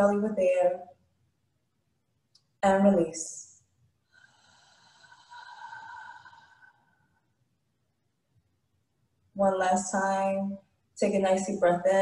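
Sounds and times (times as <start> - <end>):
woman breathing out: 4.0 - 7.2.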